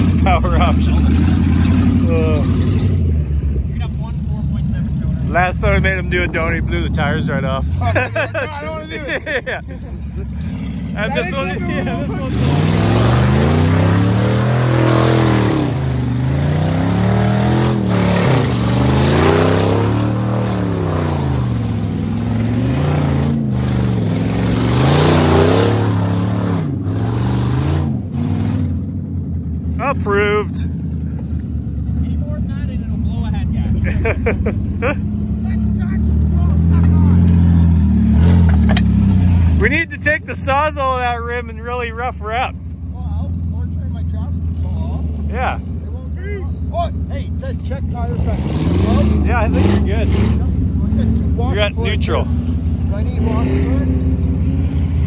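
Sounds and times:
truck engine revving: 0:00.0 - 0:55.0.

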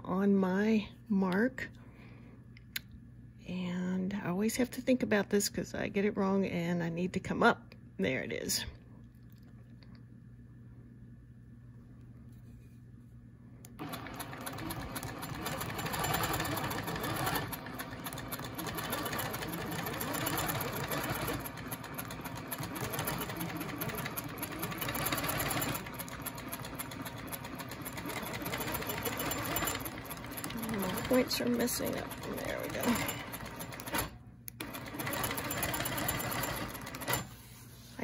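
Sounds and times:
quilting machine stitching: 0:13.8 - 0:37.4.

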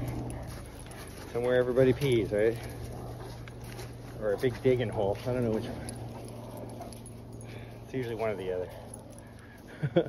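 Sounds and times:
dogs digging in soft dirt: 0:00.0 - 0:09.7
dogs sniffing: 0:00.0 - 0:09.7.

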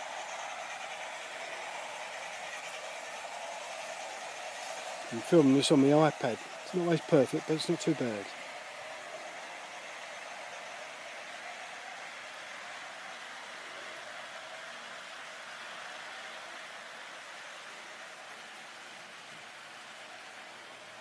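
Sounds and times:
model train whirring: 0:00.0 - 0:21.0.

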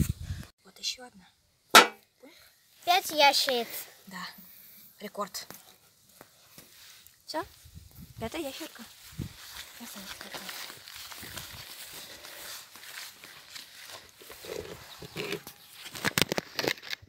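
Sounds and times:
sharp knocks: 0:01.8 - 0:02.0
footsteps through grass: 0:05.7 - 0:16.5
rustling handling noise: 0:08.2 - 0:17.0.

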